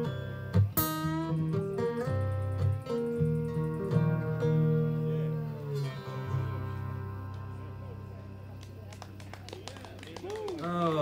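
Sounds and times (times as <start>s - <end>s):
acoustic guitar chord ringing: 0.0s - 8.9s.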